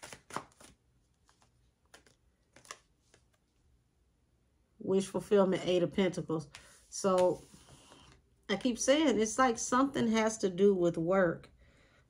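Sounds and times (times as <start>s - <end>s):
cards being shuffled: 0.0s - 3.6s, 6.5s - 8.2s.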